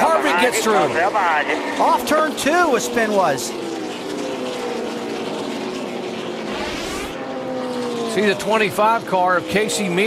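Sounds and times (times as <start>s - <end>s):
race car engines: 0.0s - 10.0s
race car passing close: 0.0s - 10.0s.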